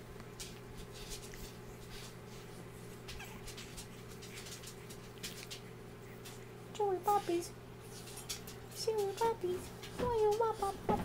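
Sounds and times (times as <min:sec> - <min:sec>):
puppy chewing fabric: 0:00.0 - 0:10.0
steady low hum: 0:00.0 - 0:11.0
puppy whining: 0:01.0 - 0:08.5.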